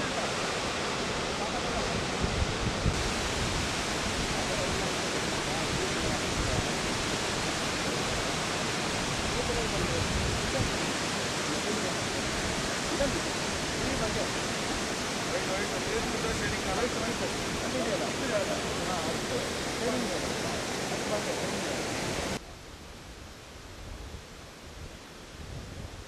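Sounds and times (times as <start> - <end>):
waterfall rushing: 0.0 - 22.4.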